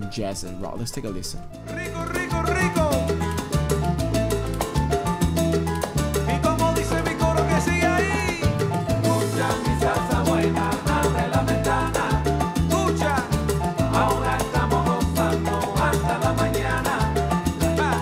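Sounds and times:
salsa music: 0:00.0 - 0:18.0.

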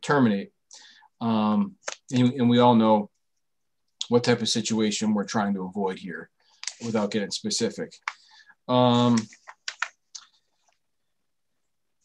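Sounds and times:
soft keyboard clicks: 0:09.1 - 0:10.4.

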